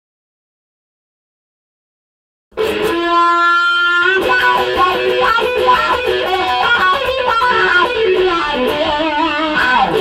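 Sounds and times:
electric guitar with wah pedal: 2.6s - 10.0s.

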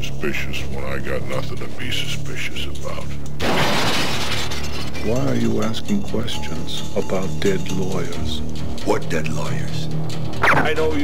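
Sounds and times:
sustained music: 0.0s - 11.0s.

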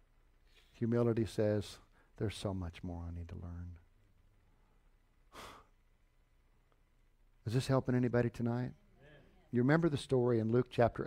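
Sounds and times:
person breathing: 4.5s - 5.7s.

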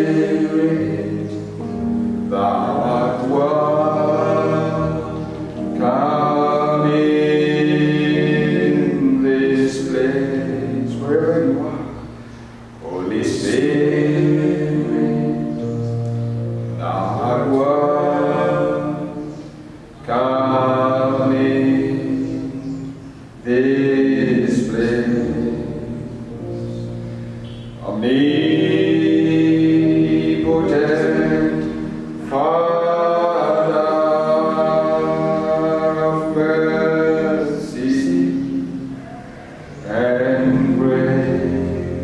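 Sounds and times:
man singing a worship song: 0.0s - 1.6s, 2.2s - 12.1s, 12.8s - 15.8s, 16.8s - 26.5s, 27.8s - 38.9s, 39.8s - 42.0s.

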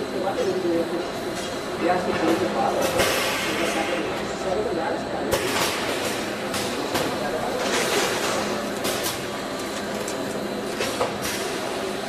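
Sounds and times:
packaging machinery clattering: 5.3s - 12.0s.

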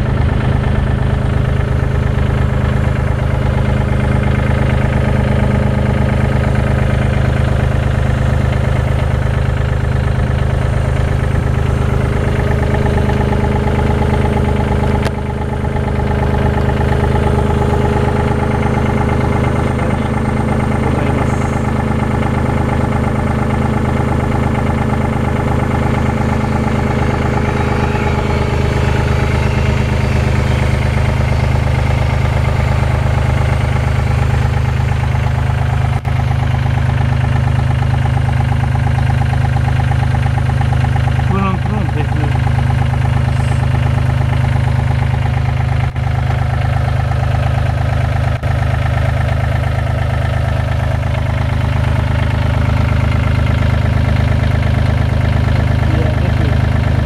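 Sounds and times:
diesel wheel loader idling: 0.0s - 57.0s.

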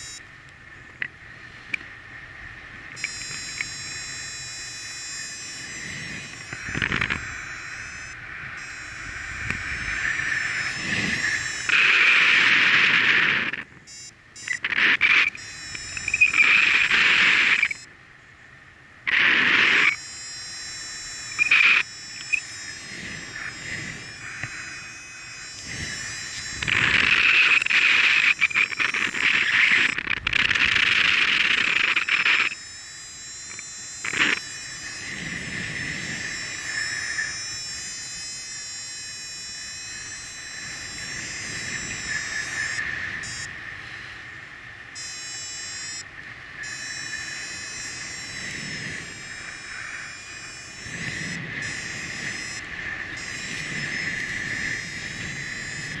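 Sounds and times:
high buzzing tone: 0.0s - 0.3s, 2.8s - 17.9s, 19.0s - 43.9s, 44.6s - 56.0s
wind rushing over microphone: 0.0s - 13.9s, 20.6s - 45.2s, 45.8s - 56.0s.

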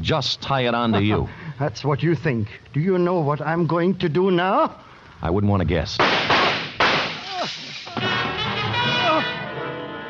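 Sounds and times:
gunshots: 6.0s - 8.2s
man crying out: 7.2s - 8.2s, 8.8s - 9.4s.

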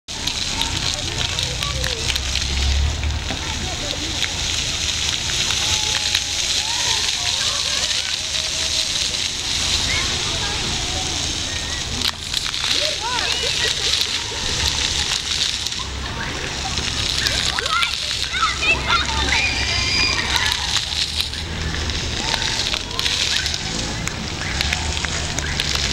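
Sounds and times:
fountain jets splashing on paving: 0.1s - 25.9s
children calling out: 5.3s - 25.9s.

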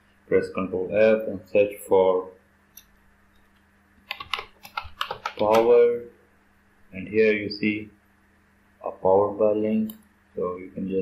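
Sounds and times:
computer keyboard typing: 4.0s - 5.7s.

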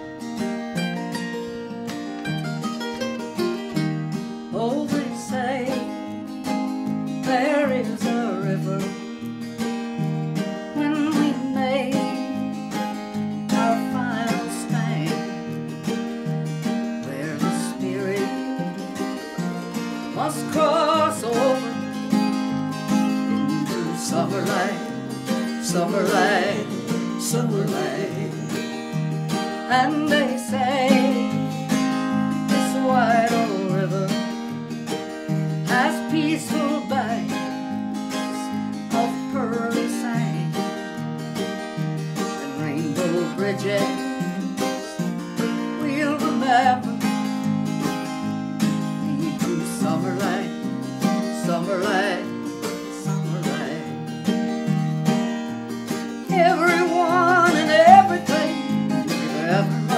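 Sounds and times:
acoustic guitar strumming: 0.0s - 59.9s
mandolin playing country tune: 0.0s - 59.9s.

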